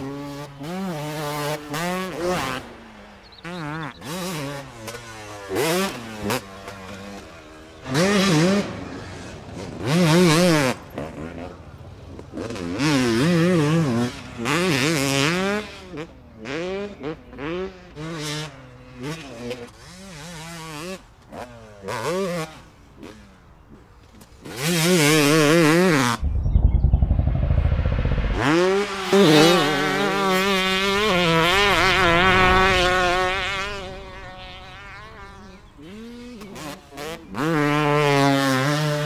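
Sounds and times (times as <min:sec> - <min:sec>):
dirt bike engine revving: 0:26.1 - 0:39.0.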